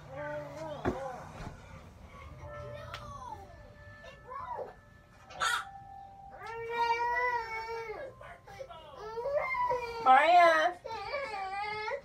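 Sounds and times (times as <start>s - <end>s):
faint background music: 0.0s - 12.0s
baby crying: 5.3s - 12.0s.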